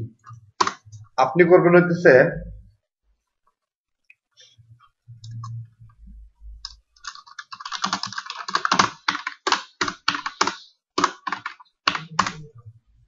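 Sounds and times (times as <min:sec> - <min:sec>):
typing on computer keyboard: 0:00.6 - 0:00.8, 0:06.6 - 0:12.5.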